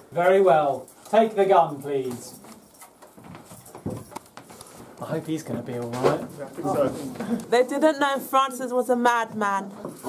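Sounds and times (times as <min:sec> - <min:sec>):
handling knocks and clicks: 0:02.0 - 0:06.2.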